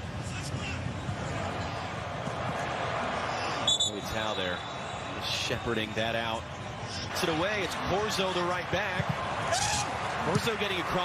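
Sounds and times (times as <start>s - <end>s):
stadium noise: 0.0s - 11.0s
referee's whistle blast: 3.6s - 5.1s.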